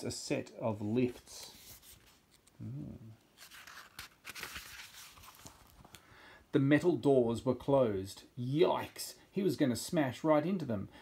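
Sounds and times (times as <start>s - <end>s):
book page turning: 1.1s - 2.6s, 3.3s - 6.0s.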